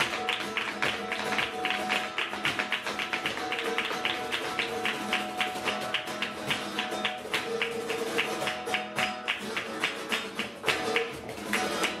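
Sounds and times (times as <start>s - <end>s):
flamenco guitar: 0.0s - 12.0s
sharp percussive beats: 0.0s - 12.0s.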